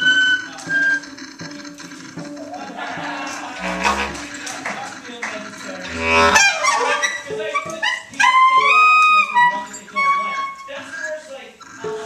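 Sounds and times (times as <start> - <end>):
drums: 0.0 - 6.4
cello: 0.0 - 11.1
clarinet: 3.5 - 4.4, 5.8 - 11.1.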